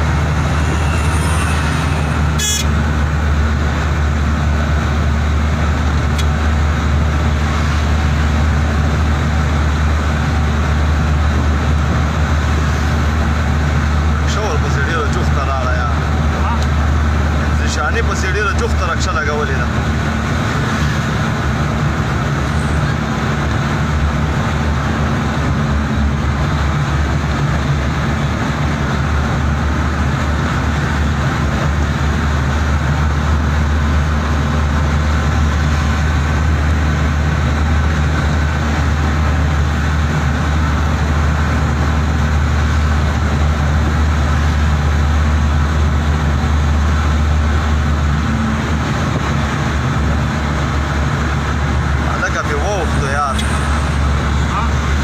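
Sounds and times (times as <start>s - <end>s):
vehicle engine drone and road noise: 0.0s - 55.0s.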